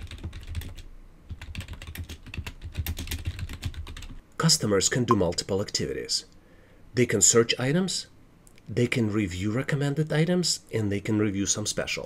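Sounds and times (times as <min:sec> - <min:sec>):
typing on computer keyboard: 0:00.0 - 0:04.2.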